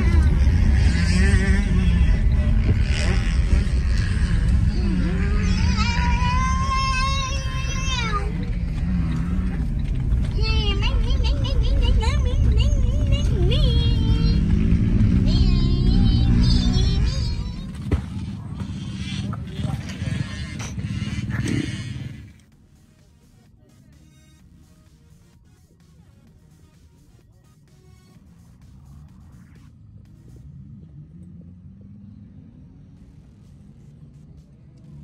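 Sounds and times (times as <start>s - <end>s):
car cabin rumble: 0.0s - 23.4s.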